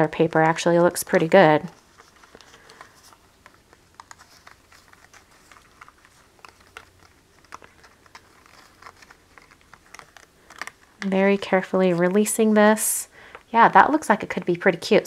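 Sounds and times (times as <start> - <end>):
paper rustling: 0.0 - 13.4
small paper clicks: 0.1 - 12.3.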